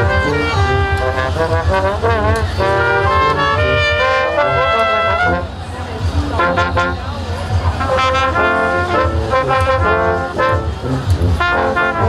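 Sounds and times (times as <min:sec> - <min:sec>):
brass ensemble playing: 0:00.0 - 0:12.0.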